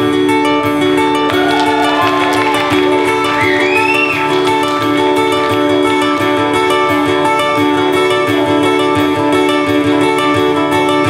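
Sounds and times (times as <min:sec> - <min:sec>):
guitar strumming: 0:00.0 - 0:11.0.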